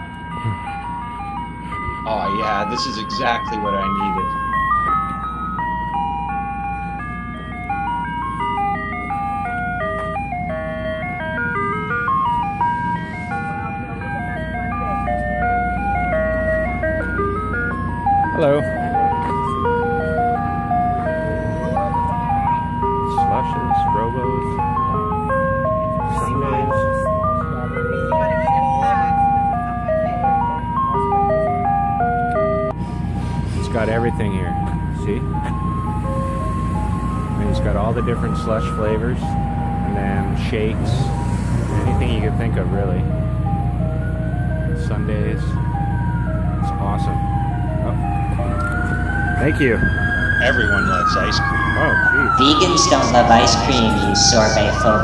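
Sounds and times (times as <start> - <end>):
ice cream truck chime tune: 0.0 - 55.0
steady low hum: 51.2 - 55.0.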